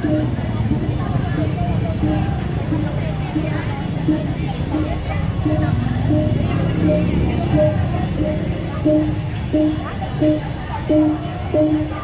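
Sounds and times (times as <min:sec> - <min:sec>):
gamelan short notes: 0:04.1 - 0:12.0.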